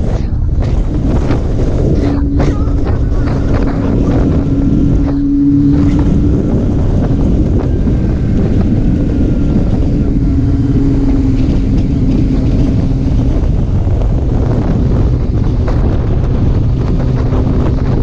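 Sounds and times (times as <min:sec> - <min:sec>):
motorcycle engine hum: 0:00.0 - 0:18.0
wind rushing over microphone: 0:00.0 - 0:18.0.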